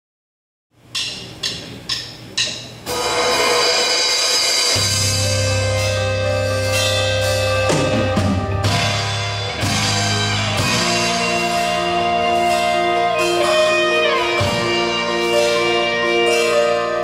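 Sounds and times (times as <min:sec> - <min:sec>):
band playing sustained chords: 0:01.4 - 0:17.0
deep bass note: 0:04.8 - 0:17.0.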